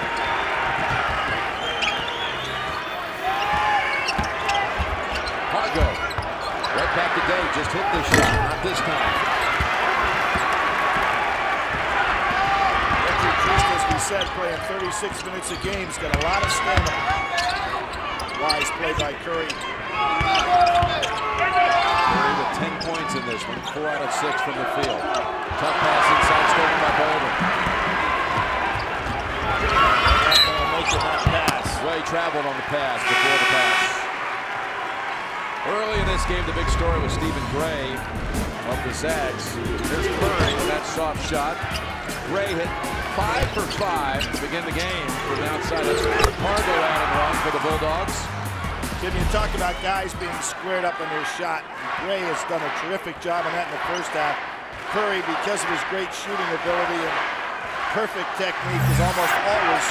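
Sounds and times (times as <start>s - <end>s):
crowd noise: 0.0s - 59.9s
brief buzzing tone: 58.6s - 59.4s.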